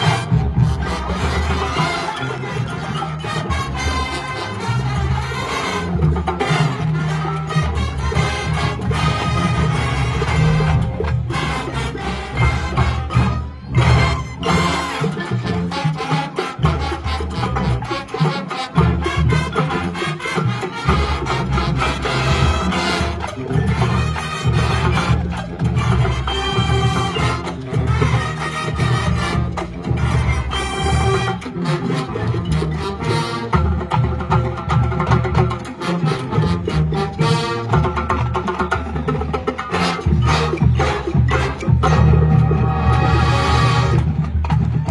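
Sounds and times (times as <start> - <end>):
marching band playing salsa: 0.0 - 44.9.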